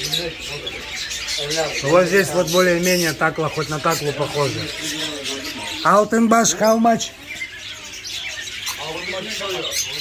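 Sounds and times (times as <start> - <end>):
caged birds chirping and squawking: 0.0 - 10.0.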